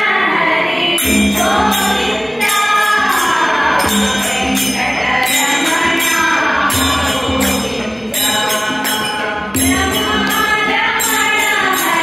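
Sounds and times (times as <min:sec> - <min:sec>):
women singing in chorus: 0:00.0 - 0:12.0
tabla: 0:00.7 - 0:12.0
metallic percussion stroke: 0:01.0 - 0:12.0.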